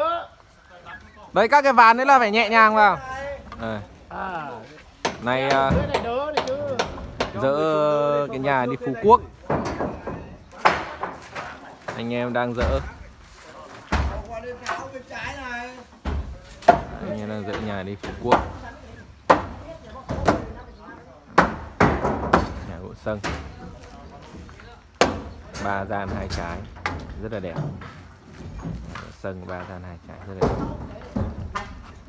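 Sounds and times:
man talking: 0.0s - 10.8s, 11.4s - 21.3s, 22.5s - 27.8s, 28.9s - 32.0s
wooden planks knocking: 4.9s - 32.0s
wooden knocks on timber: 5.0s - 7.5s, 9.4s - 13.0s, 21.3s - 23.6s.

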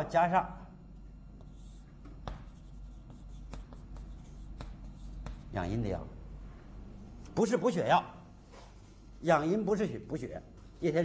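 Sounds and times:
chalk scratching on blackboard: 1.4s - 5.6s.

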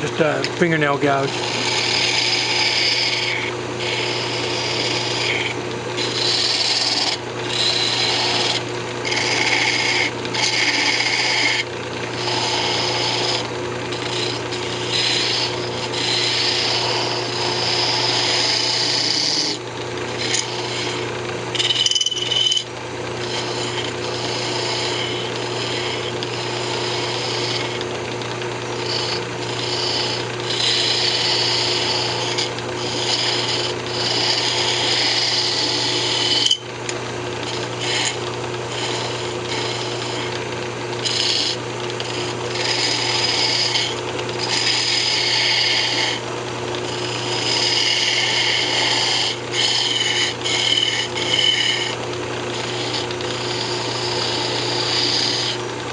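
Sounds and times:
lathe motor hum: 0.0s - 55.9s
lathe tool scraping wood: 0.0s - 55.9s.

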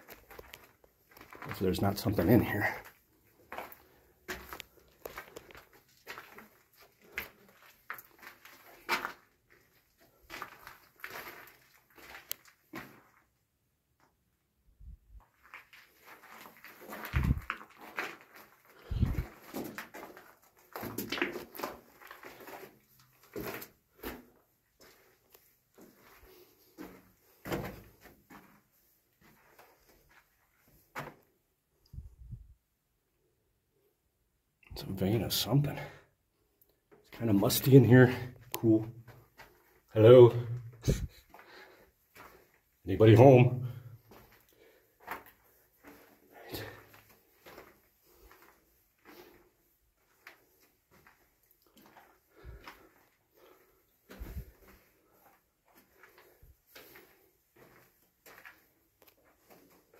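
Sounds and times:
footsteps on gravel: 15.4s - 25.0s.

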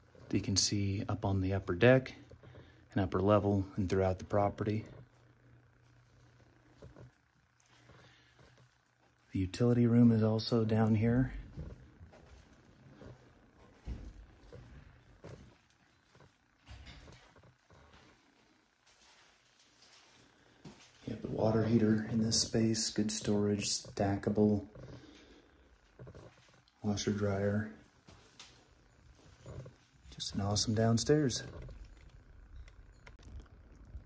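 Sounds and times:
soft footsteps on carpet: 10.4s - 31.8s.

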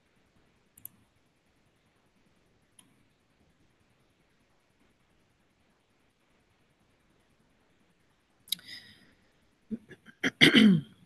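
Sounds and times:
woman clearing her throat: 9.8s - 11.0s.

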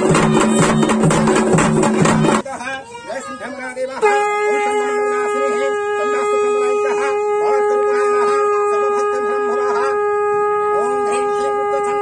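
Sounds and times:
conch shell blown: 4.0s - 12.0s.

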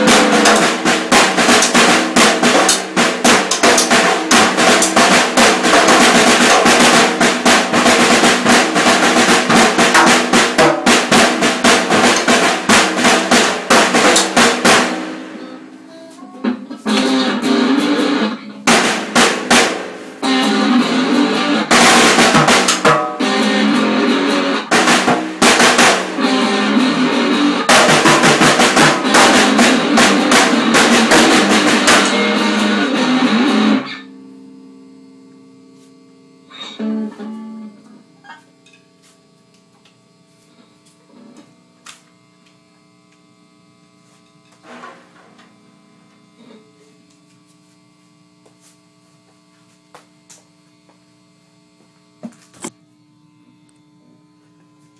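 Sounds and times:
loud rock music: 0.0s - 15.9s, 16.5s - 34.2s
mains hum: 0.0s - 54.9s.

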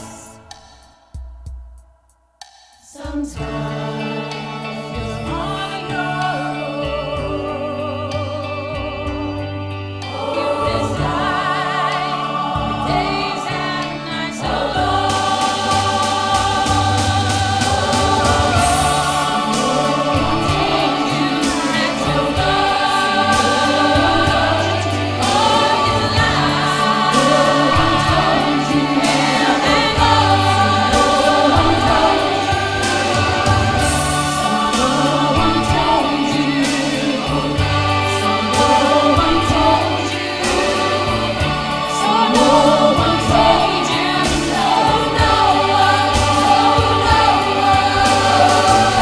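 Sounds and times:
choir singing in harmony: 0.0s - 1.0s, 2.8s - 49.0s
instrumental backing with beat: 0.0s - 7.5s, 9.0s - 49.0s.

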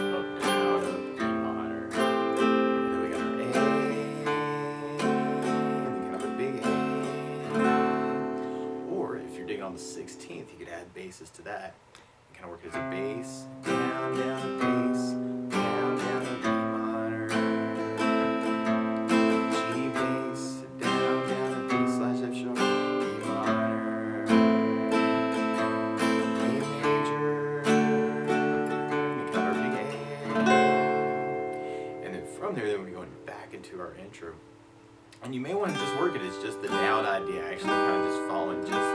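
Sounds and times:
acoustic guitar strumming: 0.0s - 38.9s.

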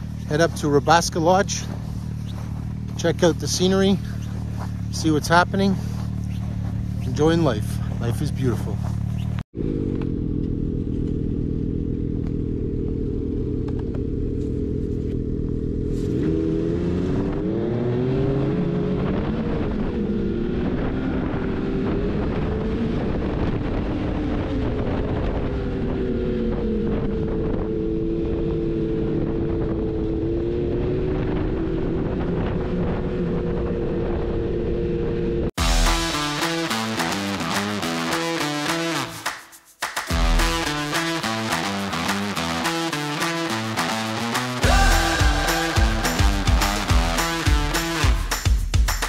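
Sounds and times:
snowmobile engine revving: 0.0s - 9.9s, 15.9s - 34.7s, 35.6s - 39.1s, 40.1s - 48.4s.

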